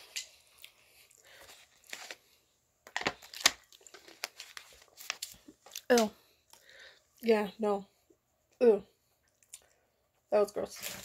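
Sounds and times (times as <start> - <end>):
wrapper rustling: 2.9 - 6.1, 10.6 - 11.0.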